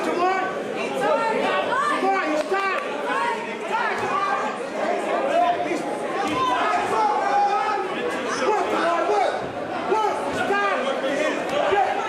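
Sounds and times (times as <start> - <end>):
crowd chatter echoing in a hall: 0.0 - 12.0.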